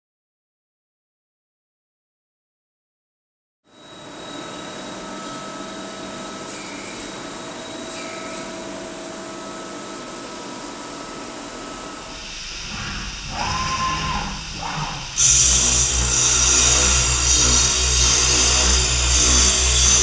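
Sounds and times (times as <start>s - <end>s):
machine hiss with humming tones: 3.7s - 20.0s
spindle whine: 3.8s - 20.0s
low machine rumble: 12.0s - 20.0s.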